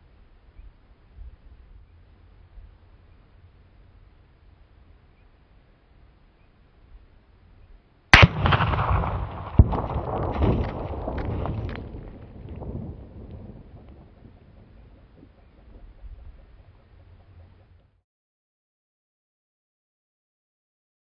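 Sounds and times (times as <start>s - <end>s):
rifle shot crack: 8.1s - 12.6s
rolling echo: 8.2s - 16.0s.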